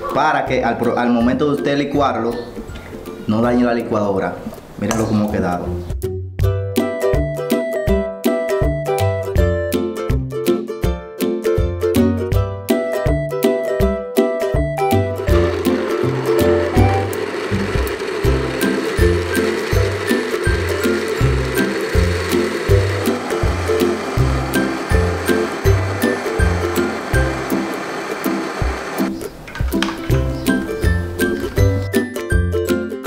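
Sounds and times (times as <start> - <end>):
blender running: 15.2 - 29.2.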